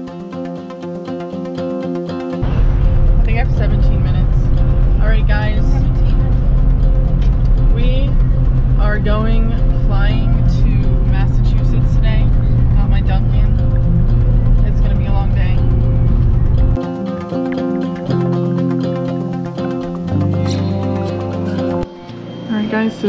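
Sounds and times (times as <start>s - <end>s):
music: 0.0s - 23.0s
road and engine noise in car: 5.1s - 16.8s.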